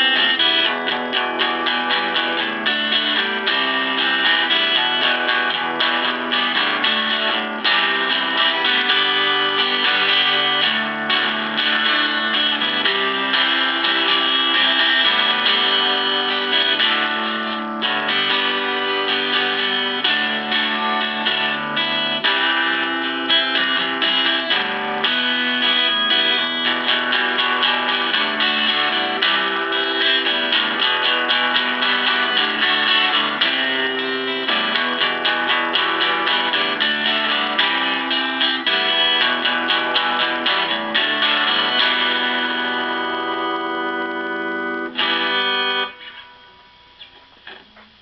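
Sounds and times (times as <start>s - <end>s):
electric guitar strummed chords: 0.0s - 48.0s.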